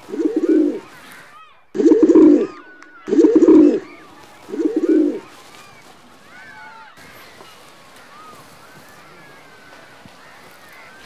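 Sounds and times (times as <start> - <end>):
pigeon cooing: 0.0 - 7.5
small birds chirping faintly: 0.0 - 11.0.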